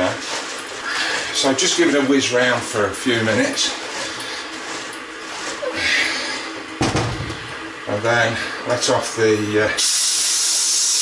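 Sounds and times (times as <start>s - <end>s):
keg thump on metal drainer: 6.8s - 7.4s.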